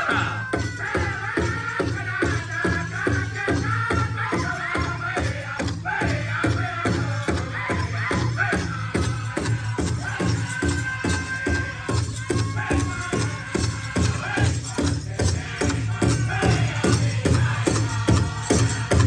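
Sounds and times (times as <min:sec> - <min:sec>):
group singing: 0:00.0 - 0:19.0
large drum steady beat: 0:00.0 - 0:19.0.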